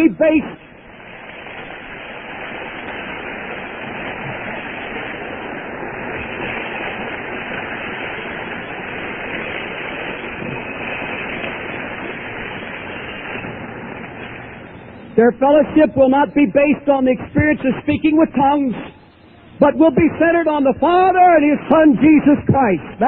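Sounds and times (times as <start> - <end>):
steady rushing noise: 0.0 - 23.0.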